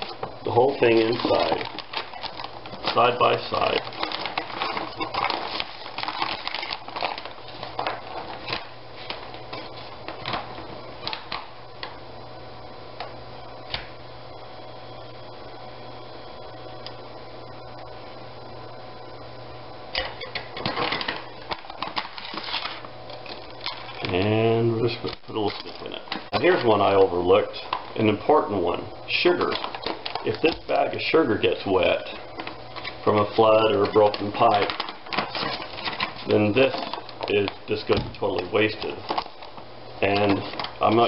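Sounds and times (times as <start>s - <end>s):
foil bag crinkling: 0.0s - 11.5s, 20.0s - 41.0s
steady low hum: 0.0s - 41.0s.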